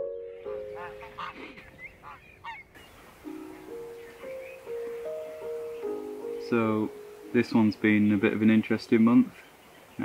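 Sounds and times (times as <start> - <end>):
geese honking: 0.4 - 8.0.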